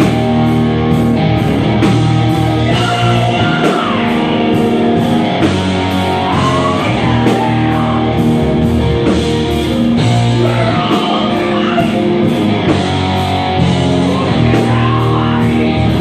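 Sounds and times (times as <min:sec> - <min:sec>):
bass guitar: 0:00.0 - 0:16.0
drum kit: 0:00.0 - 0:16.0
electric guitars: 0:00.0 - 0:16.0.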